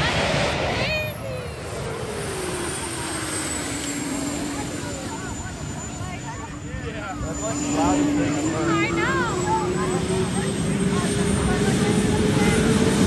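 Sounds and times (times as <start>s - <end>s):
crowd chatter: 0.0s - 13.0s
jet turbine whine: 0.0s - 13.0s.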